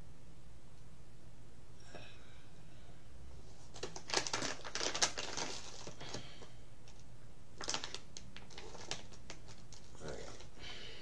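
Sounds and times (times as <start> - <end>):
pipe tobacco crackling and rustling: 3.4 - 10.7.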